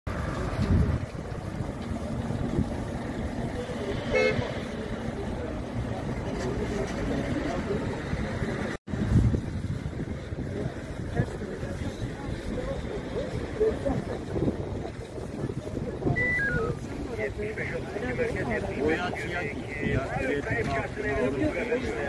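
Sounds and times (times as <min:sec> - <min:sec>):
street traffic noise: 0:00.1 - 0:22.0
short car horn toot: 0:04.1 - 0:04.4.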